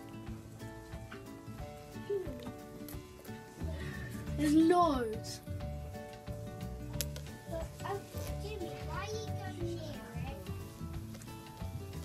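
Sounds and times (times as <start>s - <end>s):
background music with bass pulse: 0.0s - 12.0s.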